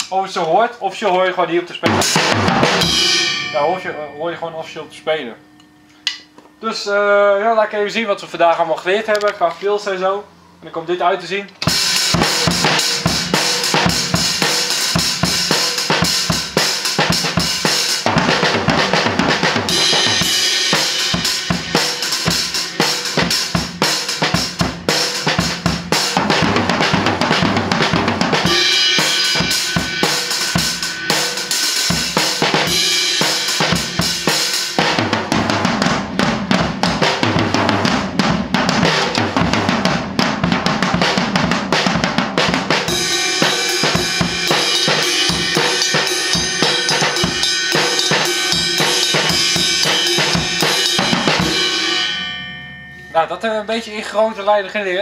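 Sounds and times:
drum kit playing: 0.0s - 8.7s, 11.5s - 55.0s.

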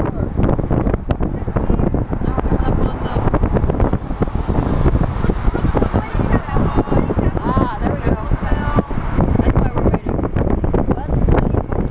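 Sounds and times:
road and traffic noise: 0.0s - 11.9s
wind buffeting microphone: 0.0s - 11.9s.

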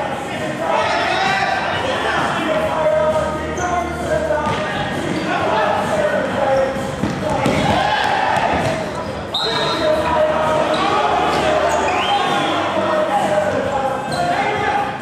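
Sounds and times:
voices and calls of players: 0.0s - 15.0s
ball kicks and bounces echoing: 4.4s - 4.7s, 7.0s - 9.0s.

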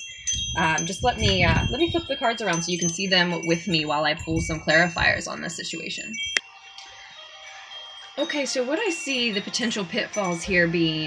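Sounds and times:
wind chimes ringing: 0.0s - 11.0s.

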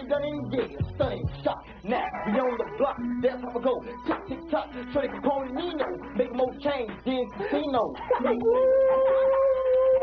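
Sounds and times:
man laughing: 2.0s - 3.1s, 7.4s - 8.8s
man howling: 8.2s - 10.0s.

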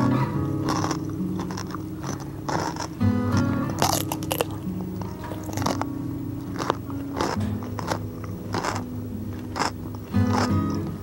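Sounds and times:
background music with low notes: 0.0s - 11.0s
chewing crunchy cucumber: 0.0s - 11.0s.

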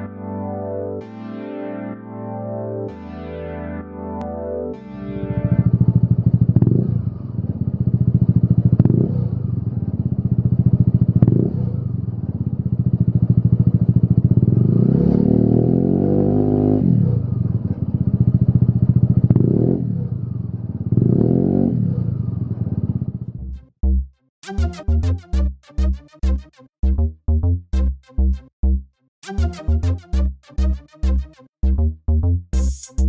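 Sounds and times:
scooter engine idling and revving: 5.4s - 23.6s.

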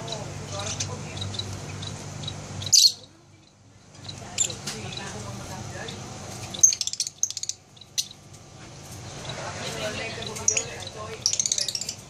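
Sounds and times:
cage birds chirping: 0.0s - 12.0s.

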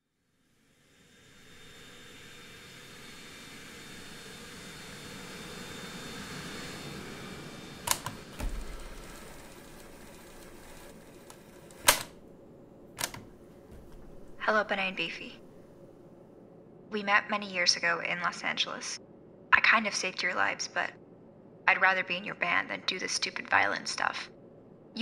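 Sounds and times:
sharp clicks: 7.9s - 8.4s, 13.0s - 13.3s.

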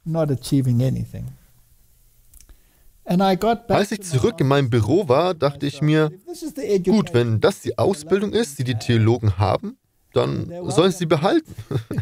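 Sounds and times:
man speaking: 0.0s - 1.4s, 3.0s - 12.0s.

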